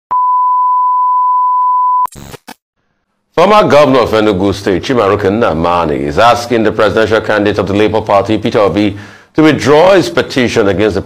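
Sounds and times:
steady high test tone beep: 0.1 - 2.1.

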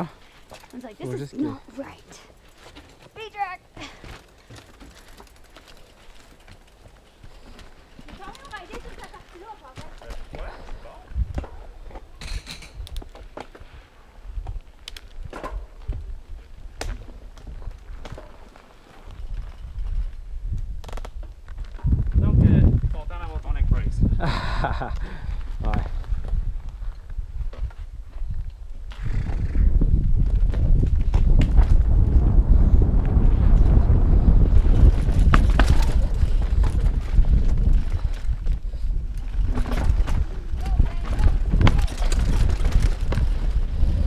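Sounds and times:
bike knocks and rattles: 34.5 - 44.0.

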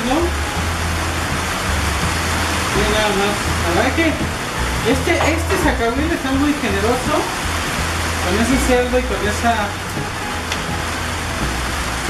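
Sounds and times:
loud rushing fan noise: 0.0 - 12.0.

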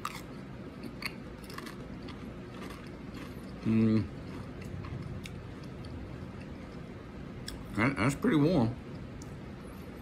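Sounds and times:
potato crisp crunching: 0.0 - 6.8.

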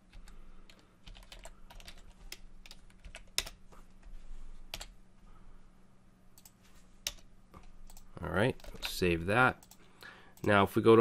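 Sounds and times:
computer keyboard typing: 0.1 - 4.0, 4.7 - 4.9, 6.4 - 9.8.

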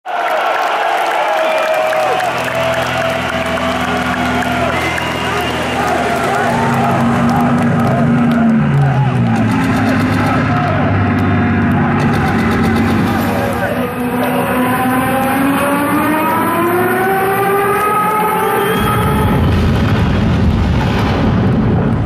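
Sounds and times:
crowd cheering and shouting: 0.0 - 20.7.

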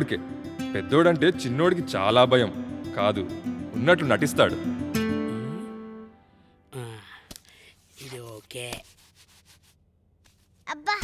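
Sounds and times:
man's falling vocal sounds: 5.2 - 5.9
pen scratching on newspaper: 7.8 - 10.6.

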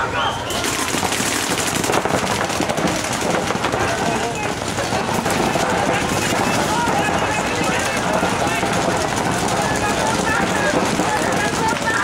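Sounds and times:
paintball markers firing rapidly: 0.5 - 12.0.

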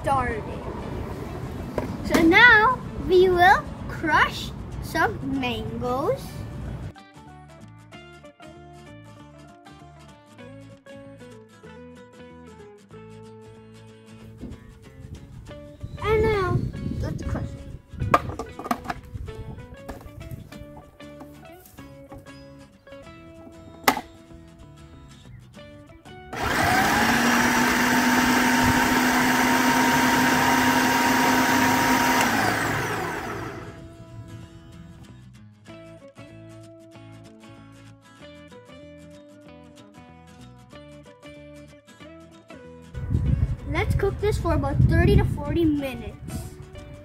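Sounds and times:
food processor running: 26.4 - 33.8.

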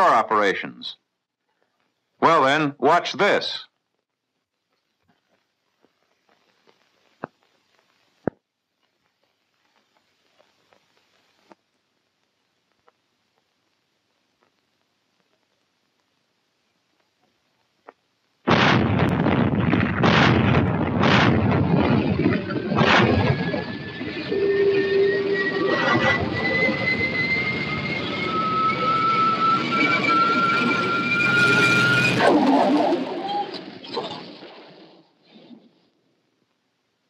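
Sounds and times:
heavy naval gunfire: 18.5 - 23.7
continuous roar: 18.5 - 34.8
thin whine rising in pitch: 21.7 - 34.7.

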